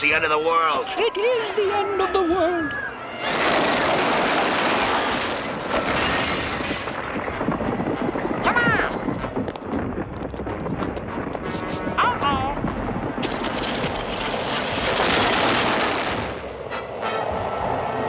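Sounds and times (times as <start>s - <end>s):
cartoon storm wind rushing: 1.6s - 16.7s.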